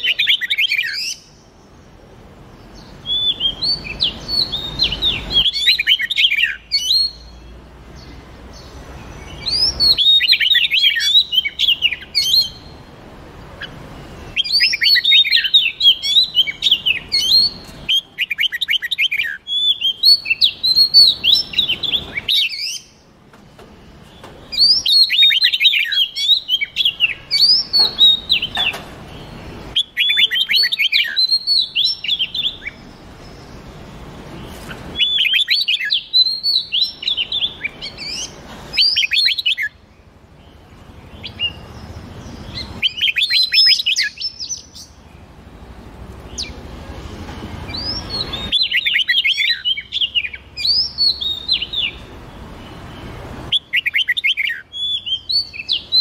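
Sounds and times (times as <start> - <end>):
birds chirping and whistling: 0.0 - 56.0.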